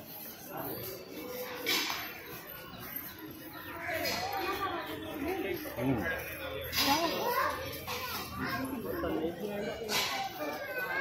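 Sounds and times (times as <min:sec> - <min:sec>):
people talking: 0:00.0 - 0:11.0
child's voice: 0:10.4 - 0:11.0.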